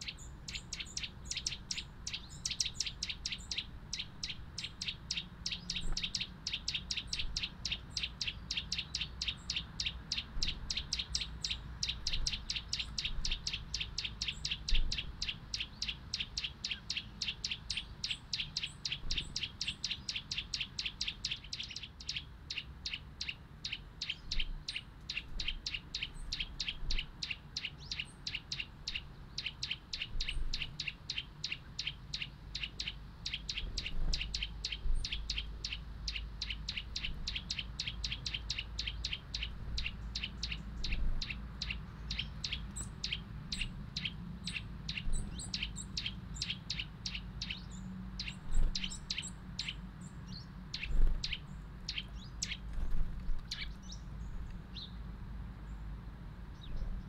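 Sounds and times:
songbird chipping: 0.0 - 57.0.

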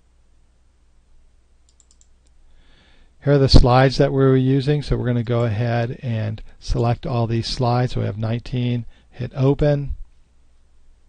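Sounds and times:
faint computer mouse clicks: 1.7 - 2.4.

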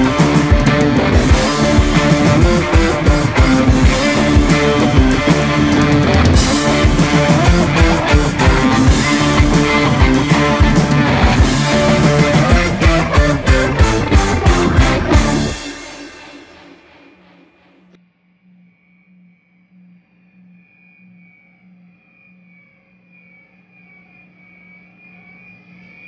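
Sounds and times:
distorted electric guitar: 0.0 - 18.0
guitar amp sustained tone: 0.0 - 26.0.

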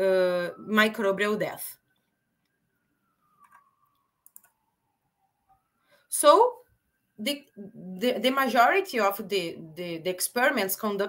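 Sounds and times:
faint computer clicks: 3.4 - 4.6.

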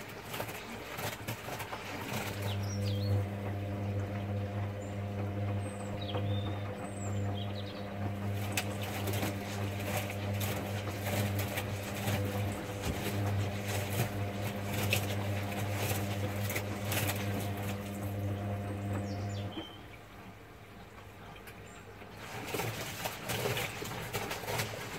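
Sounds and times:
wet laundry tumbling in drum: 0.0 - 19.9, 22.0 - 24.9
washing machine drum motor humming: 0.0 - 21.1, 22.0 - 24.9
soft knocks and splashes: 6.6 - 19.8, 21.0 - 24.9.

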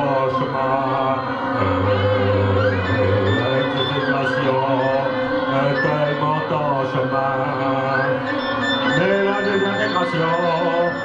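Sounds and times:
live band droning music: 0.0 - 11.0.

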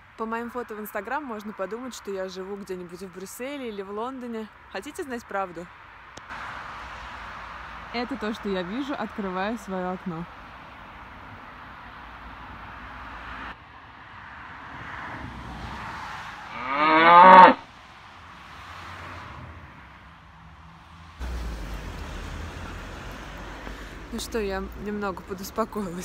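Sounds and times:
cow mooing: 16.5 - 17.6.

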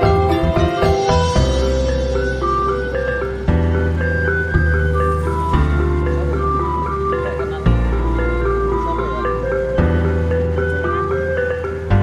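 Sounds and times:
light melody over bass line: 0.0 - 12.0.

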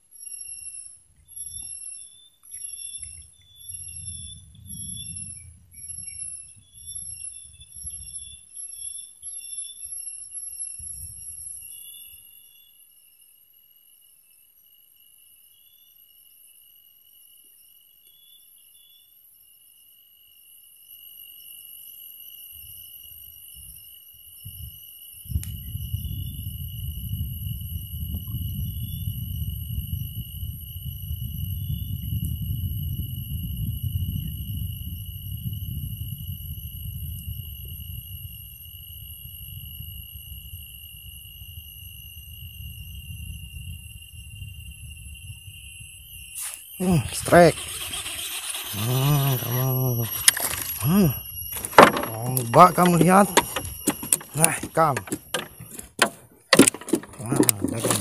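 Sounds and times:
insect chorus: 0.0 - 58.0
low rumble: 3.6 - 6.8.

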